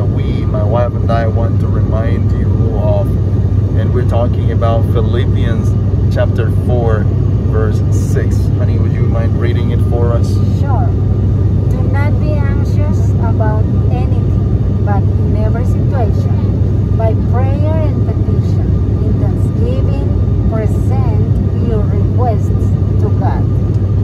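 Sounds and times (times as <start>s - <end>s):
airliner engine drone: 0.0s - 24.0s
woman speaking: 10.4s - 11.0s, 11.7s - 23.6s.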